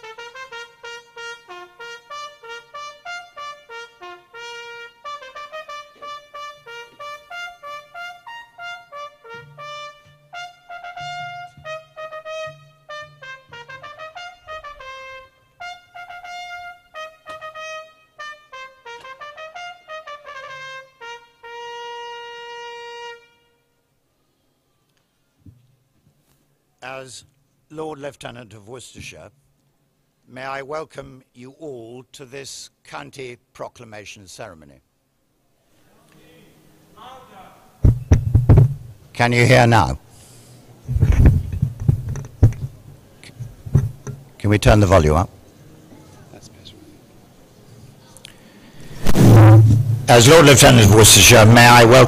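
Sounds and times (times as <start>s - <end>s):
trumpet long note: 0.0s - 23.8s, 49.0s - 52.0s
loudspeaker low hum: 49.2s - 52.0s.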